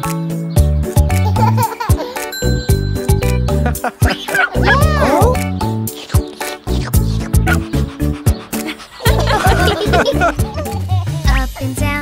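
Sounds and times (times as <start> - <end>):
upbeat children's song music: 0.0 - 12.0
cartoon puppy barking: 4.0 - 5.4, 7.2 - 7.8.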